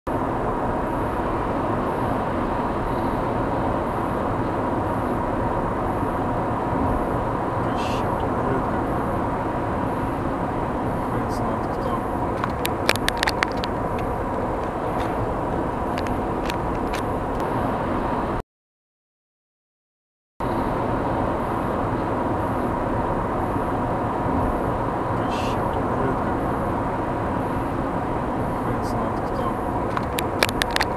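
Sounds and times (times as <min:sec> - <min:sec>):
faint steady whine: 0:00.1 - 0:18.4, 0:20.4 - 0:30.9
in-car road and engine noise: 0:00.1 - 0:18.4, 0:20.4 - 0:30.9
faint steady hum: 0:00.2 - 0:18.4, 0:20.4 - 0:30.9.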